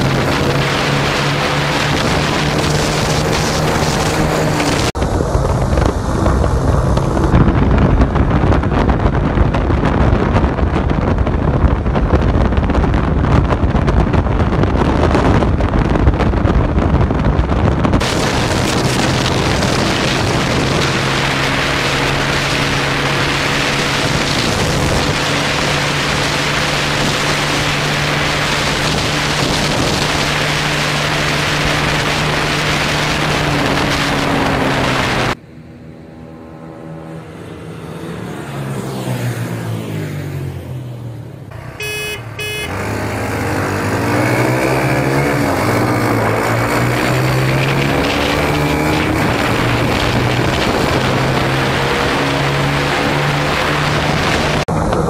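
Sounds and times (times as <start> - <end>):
wind buffeting on microphone: 0.0 - 35.6, 41.8 - 55.0
motorcycle engine running: 0.0 - 38.7, 41.2 - 55.0.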